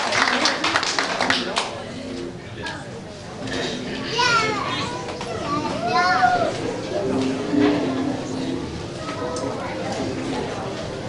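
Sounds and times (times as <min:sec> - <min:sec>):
congregation voices: 0:00.4 - 0:11.0
child's high-pitched voice: 0:04.1 - 0:06.6.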